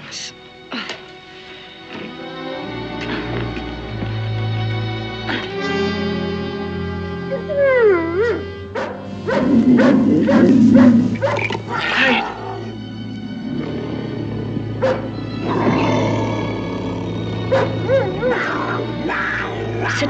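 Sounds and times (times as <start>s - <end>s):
music score: 0.4s - 20.0s
dog barking: 8.2s - 12.8s, 14.8s - 15.6s, 17.5s - 20.0s.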